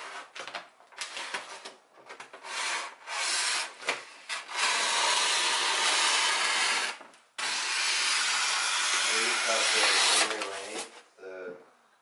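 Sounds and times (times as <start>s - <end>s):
scissors cutting paper: 8.9s - 10.9s.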